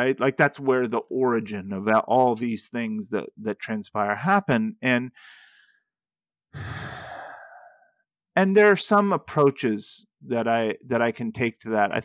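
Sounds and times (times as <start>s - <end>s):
man breathing out: 6.5s - 8.0s.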